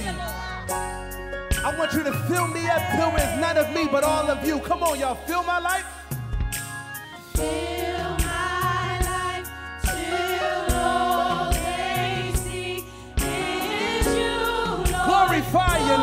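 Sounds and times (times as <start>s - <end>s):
gospel group singing in harmony: 0.0s - 0.9s, 1.6s - 16.0s
band with steady beat: 0.0s - 16.0s.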